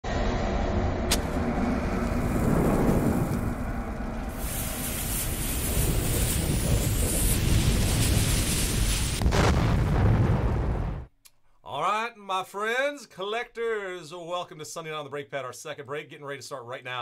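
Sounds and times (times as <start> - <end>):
rumble and rush of flames: 0.1 - 11.1.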